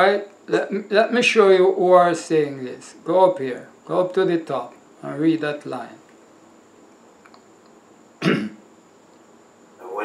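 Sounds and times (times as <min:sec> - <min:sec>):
person coughing: 0:08.2 - 0:08.6.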